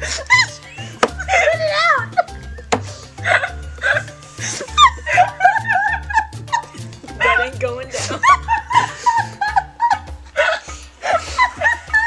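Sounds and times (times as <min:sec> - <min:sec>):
background music with bass line: 0:00.0 - 0:12.0
women laughing and squealing: 0:00.0 - 0:12.0.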